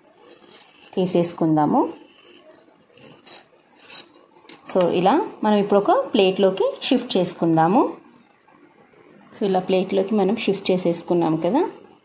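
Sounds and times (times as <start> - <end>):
knife scraping steel pot: 0.2 - 4.2
woman speaking: 1.0 - 2.1, 4.6 - 8.1, 9.3 - 11.9.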